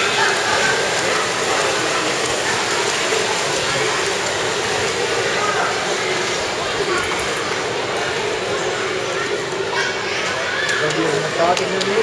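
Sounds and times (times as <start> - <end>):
splashing water: 0.0 - 12.0.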